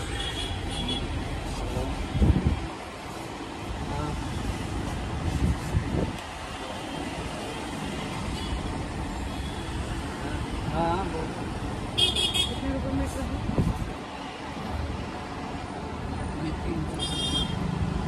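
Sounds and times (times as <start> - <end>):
passing road traffic: 0.0 - 18.0.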